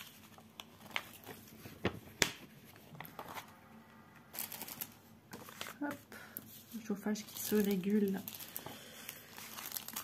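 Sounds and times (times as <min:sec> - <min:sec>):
plastic wrapping crinkling: 0:00.0 - 0:03.5, 0:04.3 - 0:10.0.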